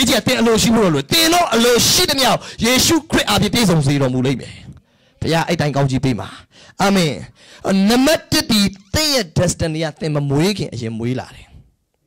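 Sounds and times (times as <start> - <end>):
man preaching into a microphone: 0.0 - 11.6.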